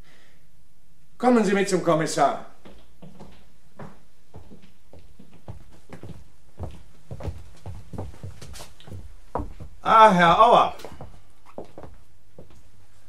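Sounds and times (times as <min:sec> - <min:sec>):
man speaking: 0:01.2 - 0:02.6, 0:09.8 - 0:10.9
footsteps of people walking: 0:02.6 - 0:13.0.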